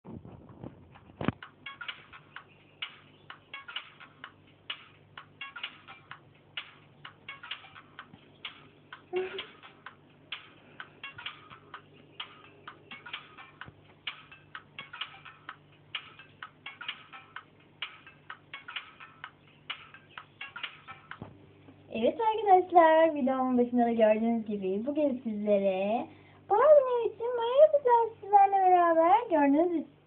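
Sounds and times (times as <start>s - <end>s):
faint low hum: 0.1s - 30.0s.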